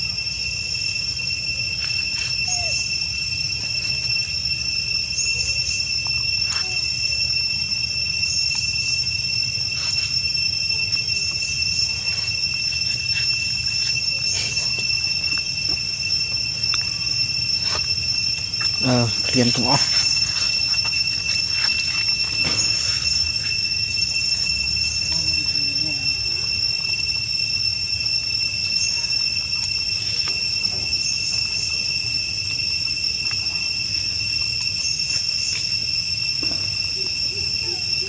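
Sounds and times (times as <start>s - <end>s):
high-pitched insect drone: 0.0s - 38.0s.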